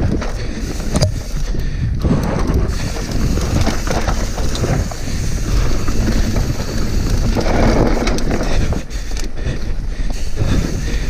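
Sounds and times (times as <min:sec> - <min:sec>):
bike chain and frame rattling: 0:00.0 - 0:11.0
wind rushing over microphone: 0:00.0 - 0:11.0.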